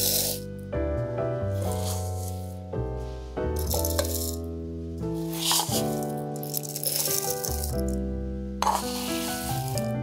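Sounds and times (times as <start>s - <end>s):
oats rattling into plastic bowl: 3.6s - 4.4s, 5.4s - 8.0s.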